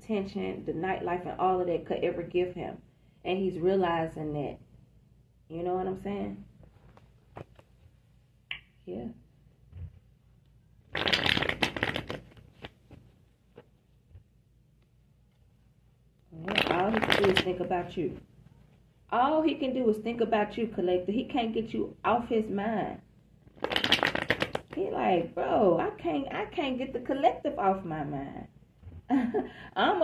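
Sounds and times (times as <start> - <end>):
cards being shuffled: 6.8 - 7.8, 10.9 - 13.8, 16.4 - 17.7, 23.4 - 24.8.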